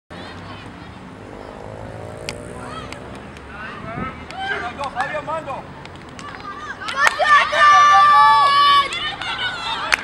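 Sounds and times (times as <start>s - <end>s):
voices of children and spectators: 0.1s - 10.0s
high calls: 0.6s - 3.6s.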